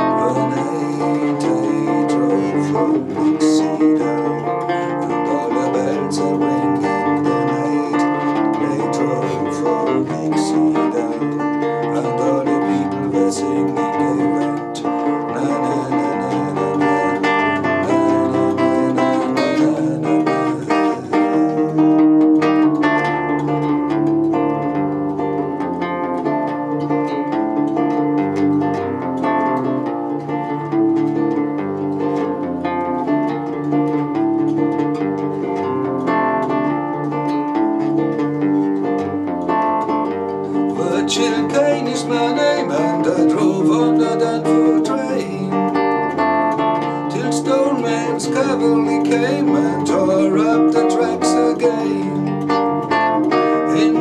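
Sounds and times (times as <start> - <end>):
acoustic guitar plucking: 0.0 - 54.0.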